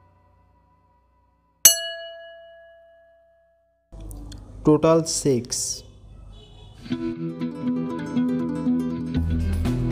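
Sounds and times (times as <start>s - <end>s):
bell-like ding: 1.7s - 3.8s.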